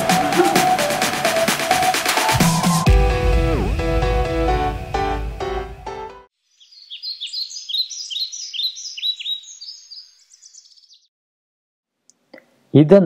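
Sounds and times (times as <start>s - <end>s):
bird chirping: 6.4s - 11.1s.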